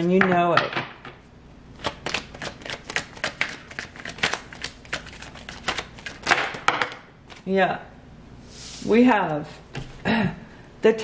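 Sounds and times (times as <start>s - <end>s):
cards being shuffled: 1.8s - 7.4s.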